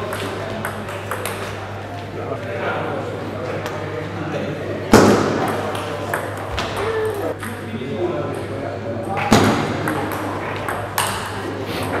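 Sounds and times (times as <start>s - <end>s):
hard-hit table tennis shots: 0.0s - 1.7s, 4.9s - 7.6s, 9.0s - 12.0s
murmur of voices: 0.0s - 12.0s.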